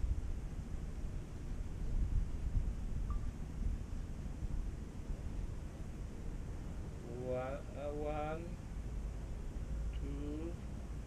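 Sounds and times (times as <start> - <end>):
wind buffeting microphone: 0.0 - 6.9.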